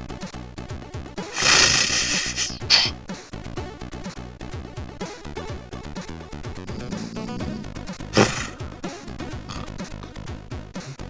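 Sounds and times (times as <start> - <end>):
loud hissing crash: 1.4 - 2.9, 8.2 - 8.6.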